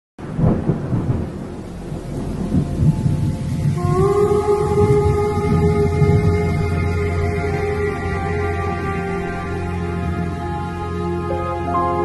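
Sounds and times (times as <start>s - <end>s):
steady rain: 0.2s - 12.0s
sustained song intro notes: 0.2s - 12.0s
thunder rumbling: 0.2s - 12.0s.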